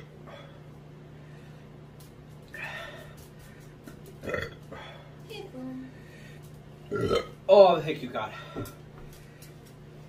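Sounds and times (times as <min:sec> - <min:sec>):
man burping loudly: 0:04.2 - 0:04.6, 0:06.9 - 0:07.4.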